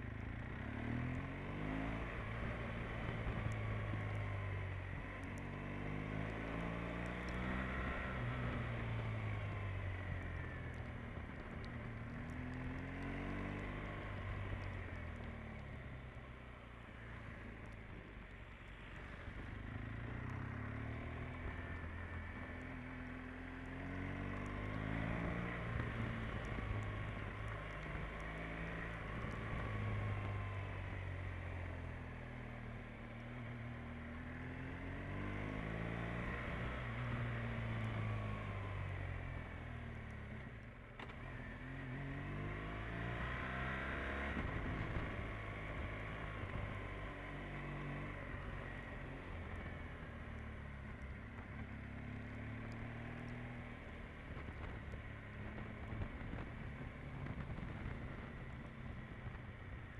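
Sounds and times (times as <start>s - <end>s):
motorcycle engine revving: 33.9s - 59.9s.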